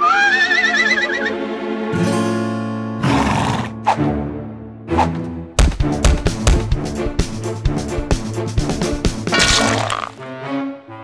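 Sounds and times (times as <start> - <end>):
cartoon horse whinny: 0.0 - 1.4
background music: 0.0 - 11.0.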